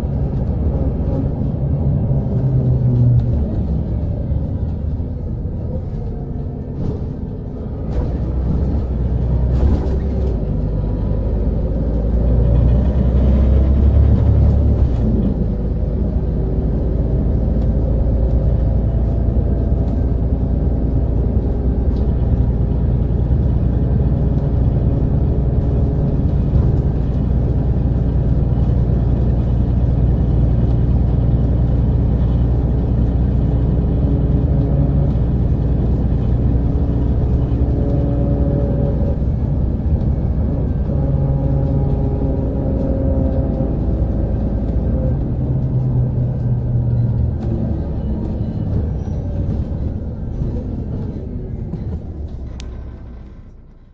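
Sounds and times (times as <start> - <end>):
bus diesel engine rumbling: 0.0 - 53.9.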